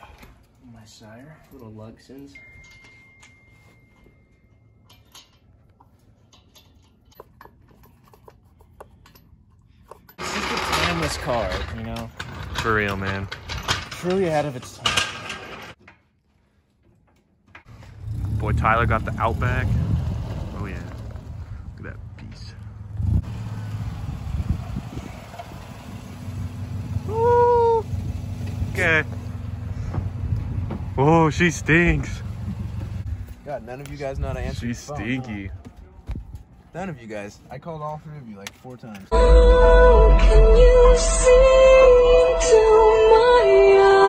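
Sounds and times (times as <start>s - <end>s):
car engine running at low revs: 17.7s - 21.6s.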